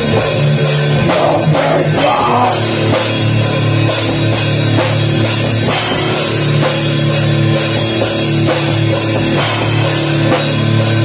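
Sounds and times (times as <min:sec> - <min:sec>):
metal band playing: 0:00.0 - 0:11.0.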